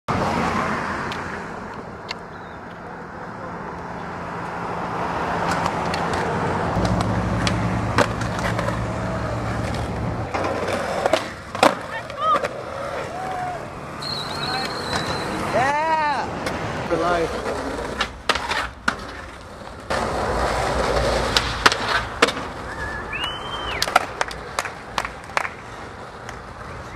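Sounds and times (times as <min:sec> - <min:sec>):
road traffic noise: 0:00.0 - 0:26.9
skateboard rolling on concrete: 0:00.1 - 0:26.9.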